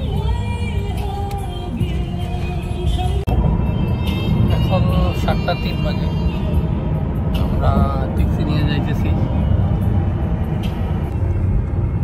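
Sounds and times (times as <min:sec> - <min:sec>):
car road and engine rumble: 0:00.0 - 0:12.0
music in car: 0:00.0 - 0:12.0.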